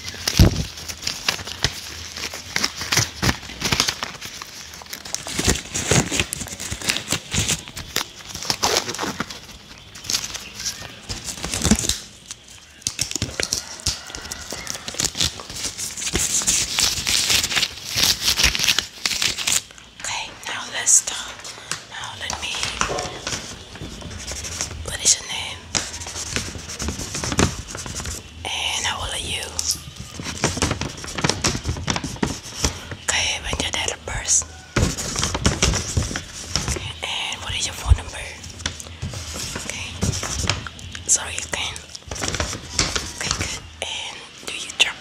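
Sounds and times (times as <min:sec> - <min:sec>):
rubber gloves crinkling and rubbing: 0:00.0 - 0:45.0.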